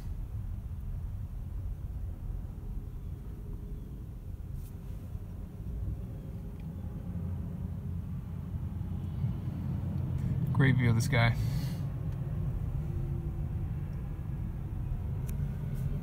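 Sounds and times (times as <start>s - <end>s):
road and cabin noise: 0.0s - 16.0s.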